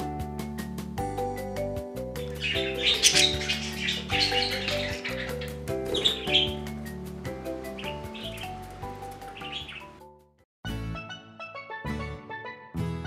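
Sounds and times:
light background music: 0:00.0 - 0:13.0
budgerigars chirping: 0:02.2 - 0:10.0.

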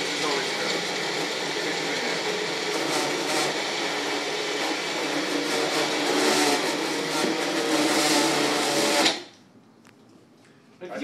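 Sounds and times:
blender running: 0:00.0 - 0:09.3.

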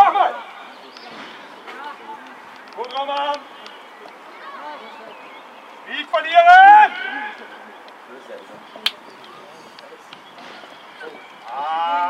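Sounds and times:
faint voices of players: 0:00.0 - 0:12.0.

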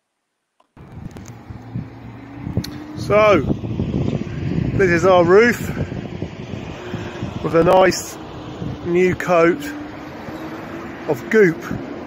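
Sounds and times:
low hum and rumble: 0:00.8 - 0:11.9.

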